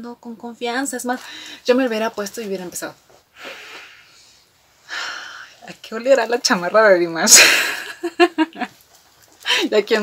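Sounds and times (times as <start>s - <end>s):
woman breathing in through nose: 3.4s - 5.6s.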